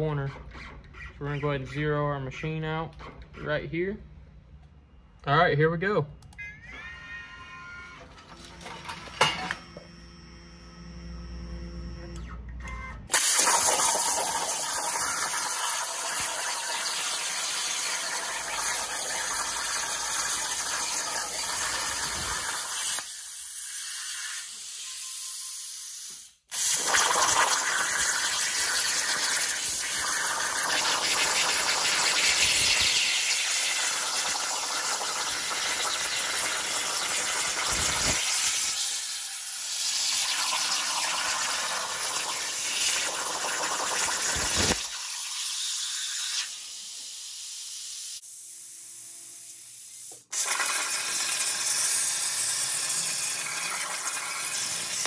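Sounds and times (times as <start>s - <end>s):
plasma torch arc hissing: 13.1s - 48.6s, 49.5s - 55.0s.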